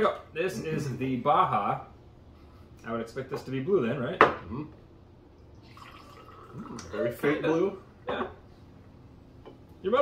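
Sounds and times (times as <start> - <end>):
liquid trickling into glass: 5.4 - 7.1.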